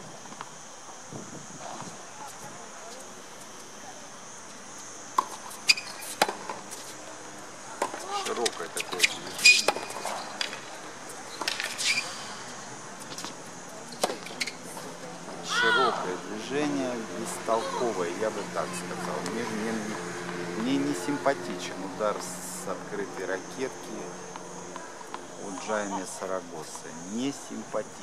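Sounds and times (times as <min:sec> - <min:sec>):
tennis ball hitting rackets: 0:05.2 - 0:06.9, 0:07.8 - 0:10.7.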